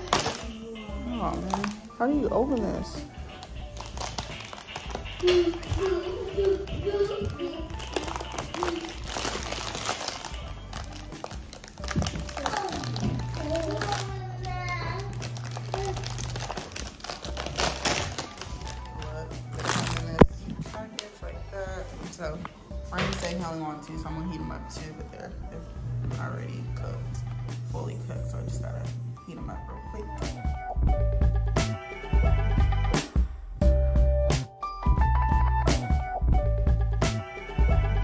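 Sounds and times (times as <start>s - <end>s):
plastic pack crinkling: 0.0s - 0.5s, 1.2s - 20.4s
background music: 0.0s - 38.0s.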